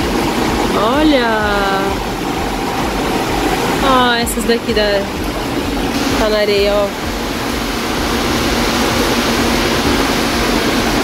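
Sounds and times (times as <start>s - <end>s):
low rumble: 0.0s - 10.9s
rushing background noise: 0.0s - 11.0s.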